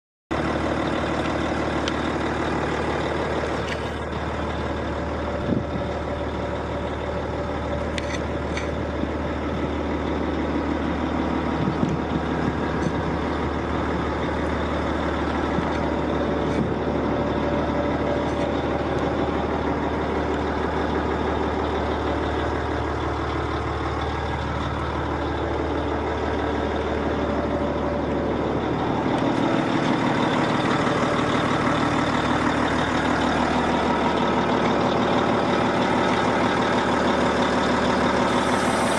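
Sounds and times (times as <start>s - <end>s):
diesel engine idling: 0.3s - 38.9s.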